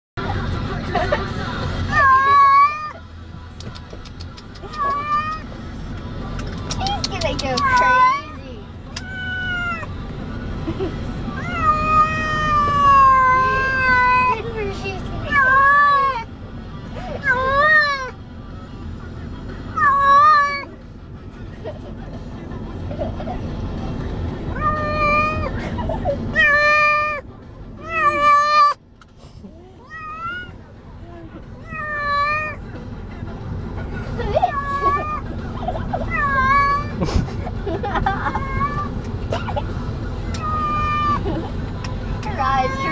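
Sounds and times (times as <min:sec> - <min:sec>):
cat meowing: 0:04.6 - 0:05.4, 0:09.0 - 0:09.9, 0:11.4 - 0:14.3, 0:24.6 - 0:25.5, 0:26.4 - 0:27.2, 0:27.8 - 0:28.8, 0:29.8 - 0:30.5, 0:31.6 - 0:32.6, 0:40.4 - 0:41.2.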